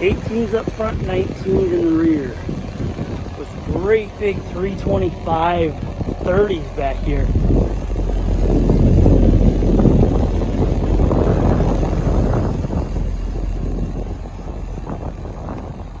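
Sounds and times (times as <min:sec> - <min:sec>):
car exhaust idling: 0:00.0 - 0:16.0.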